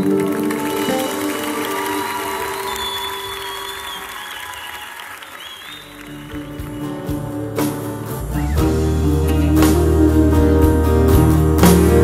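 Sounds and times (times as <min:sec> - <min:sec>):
audience applauding: 0:00.0 - 0:07.6.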